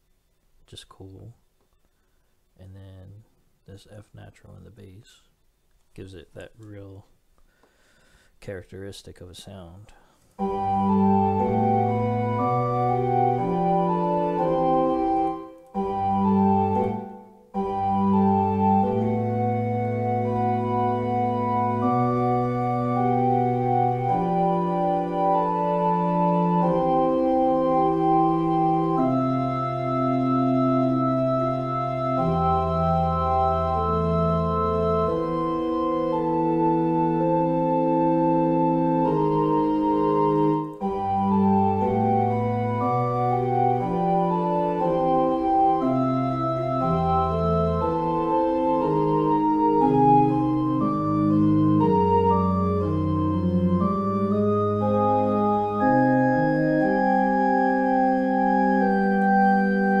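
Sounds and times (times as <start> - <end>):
pipe organ fugue: 10.4 - 60.0.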